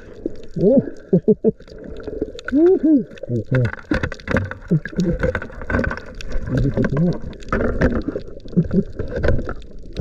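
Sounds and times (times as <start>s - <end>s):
underwater low rumble: 0.0s - 10.0s
clicks and knocks among rocks: 3.2s - 10.0s.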